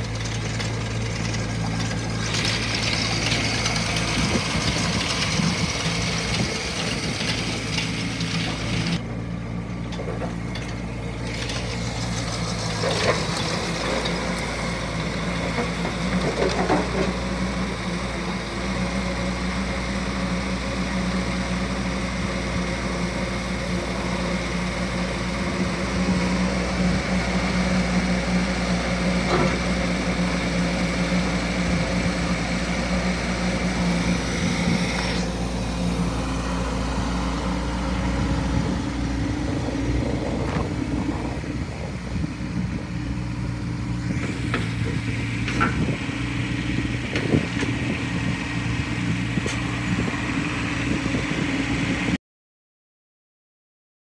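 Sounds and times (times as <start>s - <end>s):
excavator diesel engine running: 0.0s - 52.2s.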